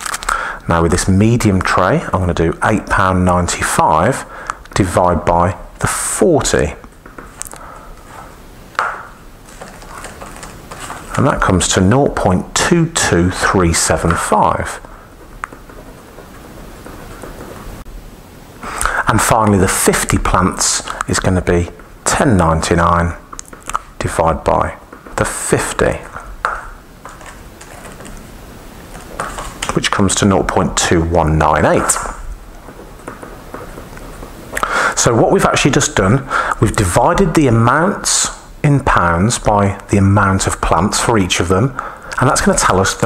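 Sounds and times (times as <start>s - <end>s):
faint handling: 6.9s - 11.8s.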